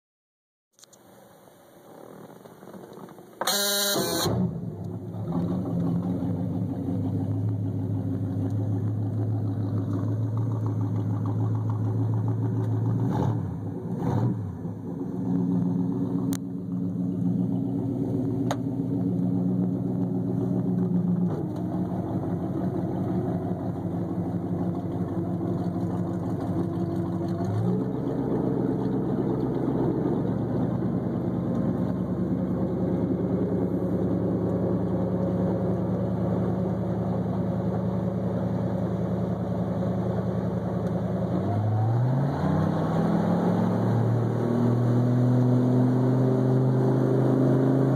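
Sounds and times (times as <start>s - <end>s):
boat engine running: 15.7s - 40.7s.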